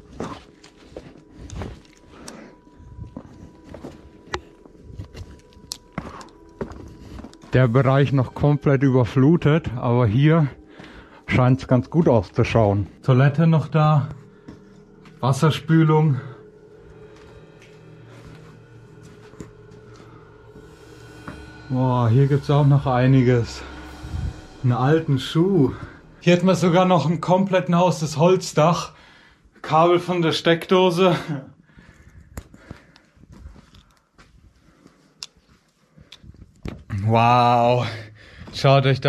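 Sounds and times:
faint footsteps on rubble: 0.0 - 7.7, 32.3 - 36.9
low steady hum: 0.0 - 29.3.

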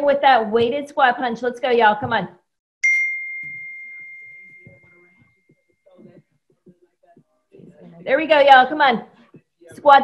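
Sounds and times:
bell-like timer chime: 2.8 - 5.9.

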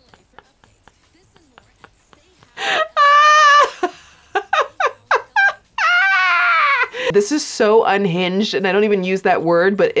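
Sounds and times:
high-pitched squealing laughter: 2.6 - 6.9.

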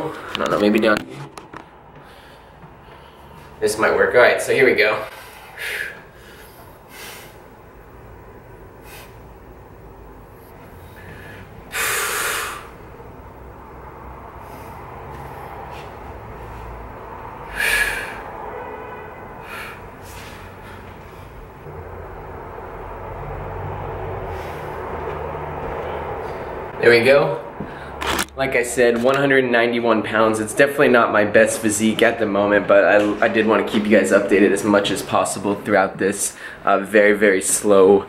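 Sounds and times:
low room noise: 0.0 - 38.0
man breathing out sharply: 5.1 - 7.4, 10.8 - 12.8, 17.4 - 18.3, 19.4 - 21.3.

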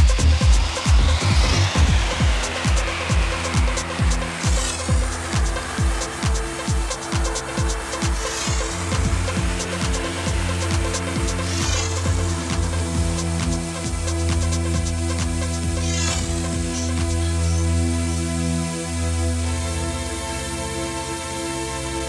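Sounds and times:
kick drum: 0.0 - 8.2
swirling sweep: 0.0 - 17.2
techno music: 0.0 - 18.3.

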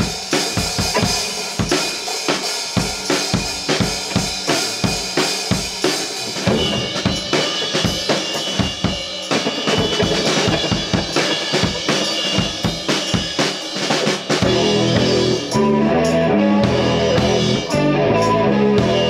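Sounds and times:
bass drum and snare beat: 0.0 - 19.0
rock band playing: 0.0 - 19.0
sustained guitar chords: 14.4 - 19.0.

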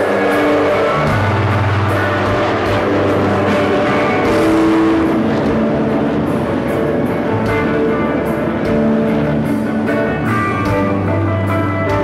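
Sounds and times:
jet aircraft roaring overhead: 0.0 - 11.5
rock band with distorted guitar: 0.0 - 12.0.

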